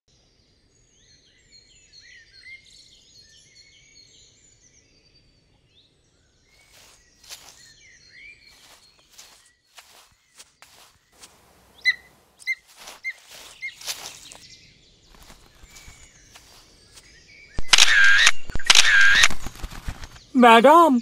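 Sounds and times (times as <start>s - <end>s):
soft rustles and clicks: 6.6s - 7.7s, 8.5s - 14.4s, 15.1s - 17.1s
high bird chirps: 6.6s - 14.5s, 15.1s - 19.2s.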